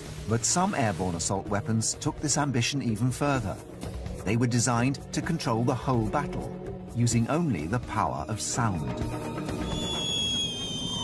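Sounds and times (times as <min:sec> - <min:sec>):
background music: 0:00.0 - 0:11.0
high-pitched whistle: 0:09.2 - 0:11.0.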